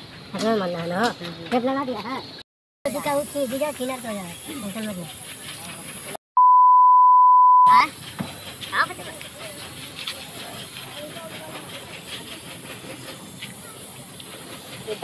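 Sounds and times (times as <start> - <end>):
steady beep tone: 6.4 - 7.8.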